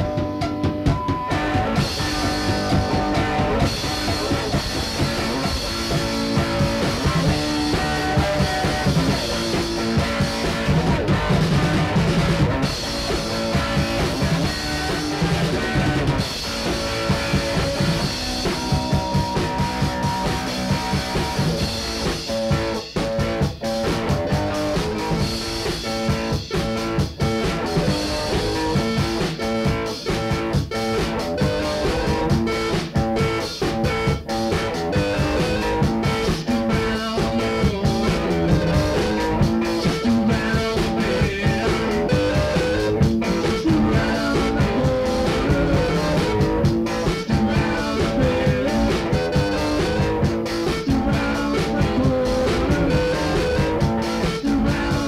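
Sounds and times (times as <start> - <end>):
drum kit: 0.0 - 55.0
electric guitar: 0.0 - 55.0.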